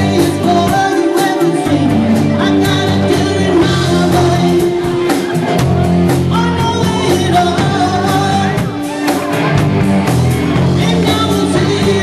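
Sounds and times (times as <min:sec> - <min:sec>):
lead singer: 0:00.0 - 0:12.0
live rock band playing: 0:00.0 - 0:12.0.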